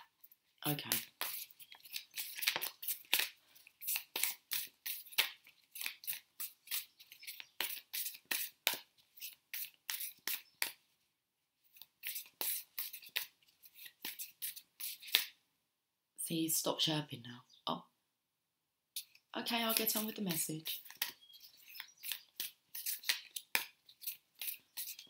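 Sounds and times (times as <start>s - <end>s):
small bird chirping: 1.3s - 2.9s, 6.4s - 8.1s, 9.9s - 10.7s, 17.4s - 17.8s, 20.2s - 23.1s.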